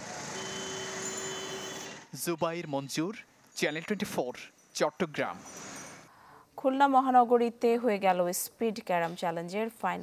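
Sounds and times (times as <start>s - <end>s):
street traffic: 0.0s - 2.2s.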